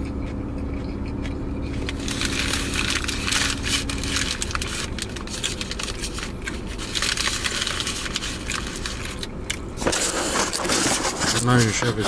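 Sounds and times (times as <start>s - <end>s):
chewing: 0.0s - 9.6s
aluminium foil crinkling: 1.7s - 12.0s.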